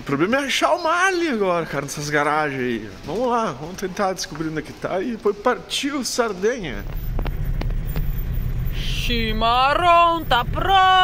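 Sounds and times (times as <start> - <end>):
vehicle engines idling: 0.0 - 11.0.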